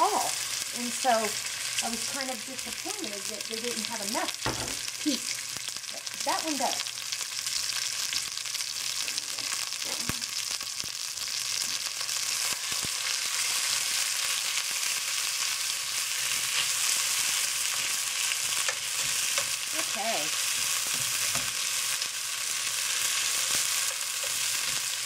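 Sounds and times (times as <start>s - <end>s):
meat sizzling in a pot: 0.0s - 25.0s.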